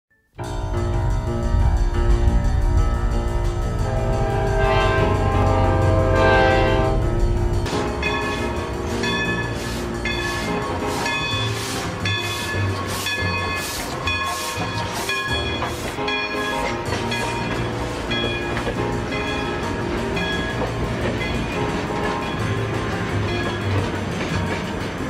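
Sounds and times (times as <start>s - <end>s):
locomotive engine rumble: 0.4s - 25.0s
locomotive multi-chime air horn: 3.7s - 7.4s, 8.0s - 23.7s.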